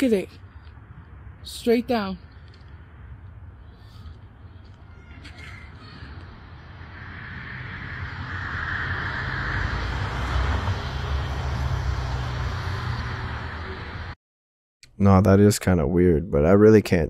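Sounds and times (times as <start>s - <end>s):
car approaching: 5.7s - 14.2s.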